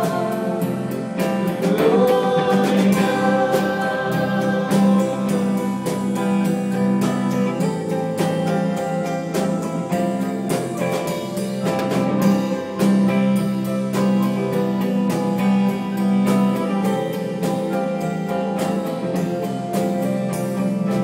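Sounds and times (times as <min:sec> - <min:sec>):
drum kit beat: 0:00.0 - 0:21.0
keyboard and guitar chords: 0:00.0 - 0:21.0.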